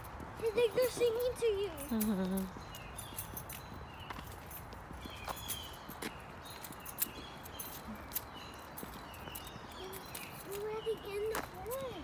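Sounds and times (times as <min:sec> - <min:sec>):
footsteps: 0:00.0 - 0:12.0
songbirds chirping: 0:00.0 - 0:12.0.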